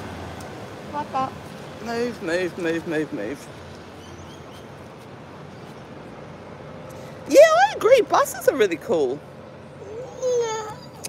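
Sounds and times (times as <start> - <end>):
low traffic rumble: 0.0 - 11.0.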